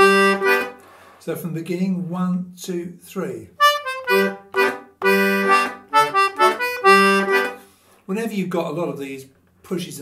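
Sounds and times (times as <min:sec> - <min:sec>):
button accordion playing dance tune: 0:00.0 - 0:00.9, 0:03.6 - 0:07.7.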